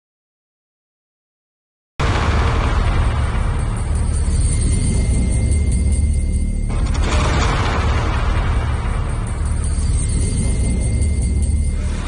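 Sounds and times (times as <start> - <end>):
deep steady rumble: 2.0 - 12.0.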